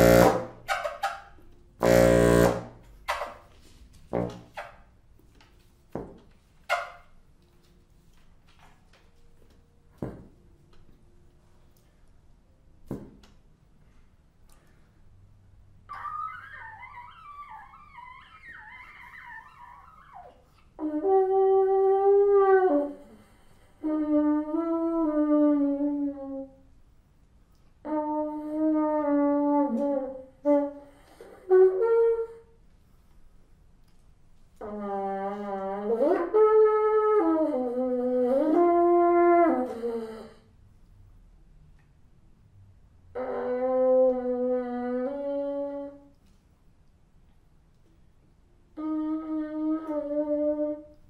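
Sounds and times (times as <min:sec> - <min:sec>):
solo bassoon playing: 0:00.0 - 0:00.7, 0:01.8 - 0:02.9.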